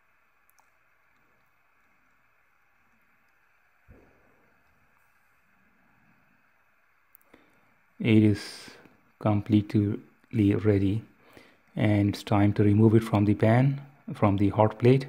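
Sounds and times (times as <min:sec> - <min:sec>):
gas burner hissing: 0:00.0 - 0:15.0
small clicks: 0:00.4 - 0:02.2.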